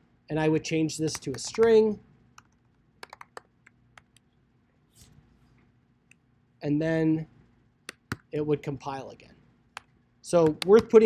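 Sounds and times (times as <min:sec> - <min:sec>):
computer keyboard typing: 0:01.1 - 0:01.8, 0:02.4 - 0:04.1, 0:10.4 - 0:11.0.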